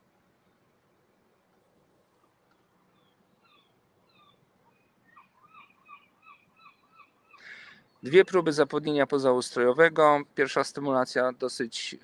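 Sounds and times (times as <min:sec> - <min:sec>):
bird chirping: 0:02.5 - 0:09.0.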